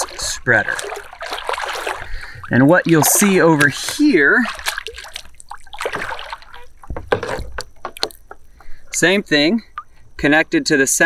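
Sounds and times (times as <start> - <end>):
shallow water splashing: 0.0 - 10.4.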